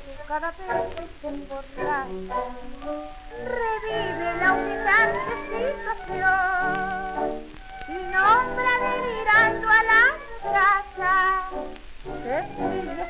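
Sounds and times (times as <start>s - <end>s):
tango music recording: 0.0s - 13.0s.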